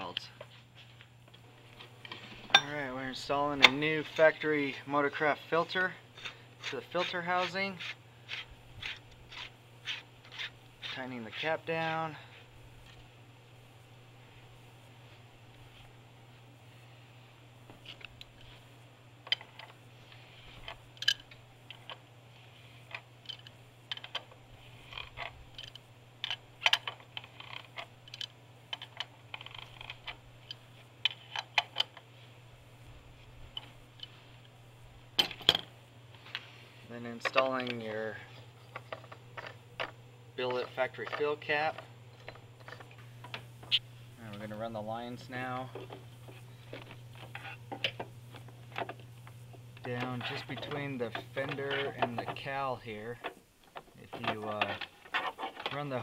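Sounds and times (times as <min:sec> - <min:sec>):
steady low hum: 0:00.0 - 0:56.0
rubber hoses rustling and scraping: 0:05.7 - 0:13.1, 0:49.8 - 0:56.0.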